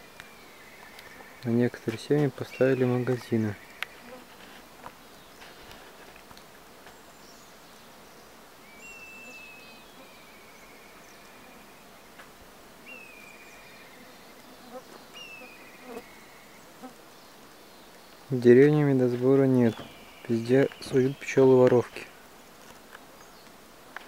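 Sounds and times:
bird singing: 0.0 - 4.2, 6.9 - 12.1, 12.8 - 22.2, 23.1 - 23.6
honeybees humming: 0.0 - 24.0.

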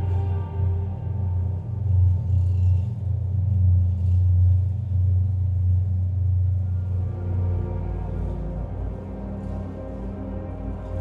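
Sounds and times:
dark ambient music with bass drone: 0.0 - 11.0.

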